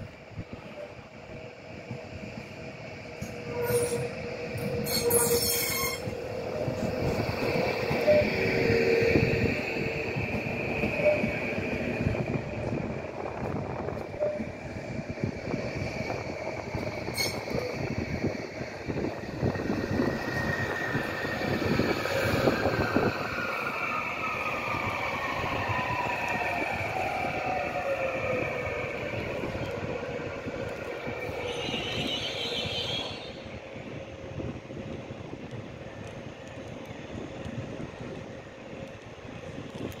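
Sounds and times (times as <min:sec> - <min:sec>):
electric train drive whine: 0:00.0 - 0:40.0
train steady hum: 0:00.0 - 0:40.0.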